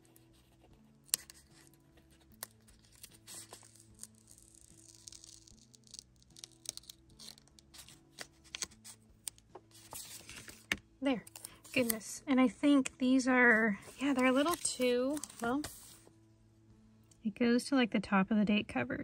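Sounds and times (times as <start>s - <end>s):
stickers peeling and rustling: 0.0s - 12.1s, 13.4s - 16.1s
soft background music: 0.0s - 19.0s.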